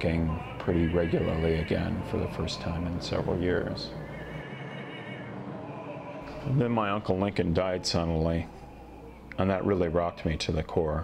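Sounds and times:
operatic voice singing long note: 0.0s - 10.6s.

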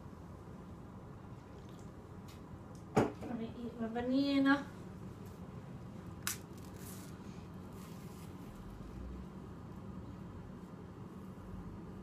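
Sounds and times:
steady low hum: 0.0s - 12.0s
banana stem snapping: 6.2s - 6.7s.

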